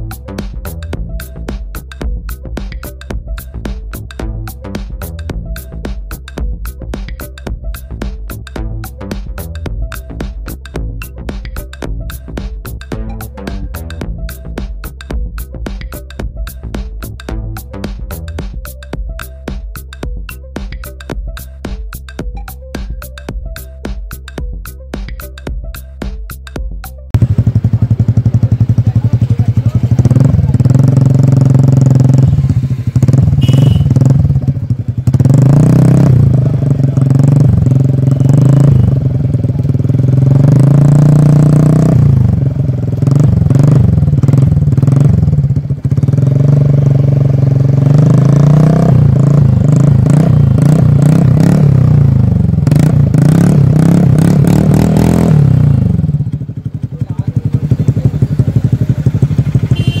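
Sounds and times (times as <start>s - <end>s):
scooter engine revving: 27.2s - 60.0s.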